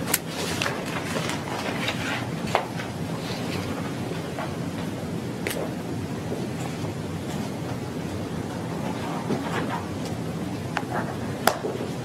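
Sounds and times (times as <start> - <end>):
steady audio feed hiss: 0.0 - 12.0.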